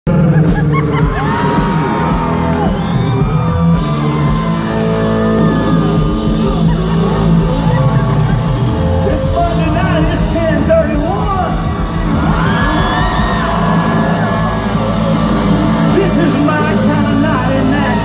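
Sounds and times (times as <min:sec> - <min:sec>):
live country band playing: 0:00.1 - 0:18.0
fans yelling and whooping: 0:00.2 - 0:18.0.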